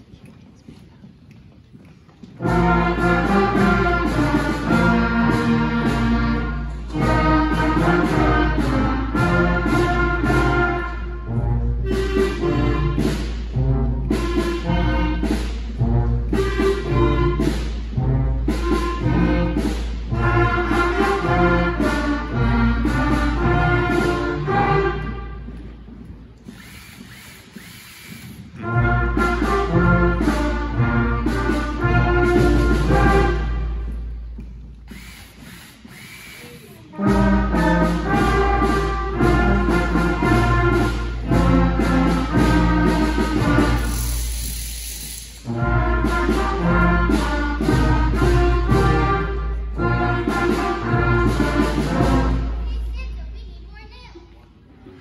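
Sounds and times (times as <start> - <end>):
concert band playing: 2.4 - 25.8, 26.4 - 52.7.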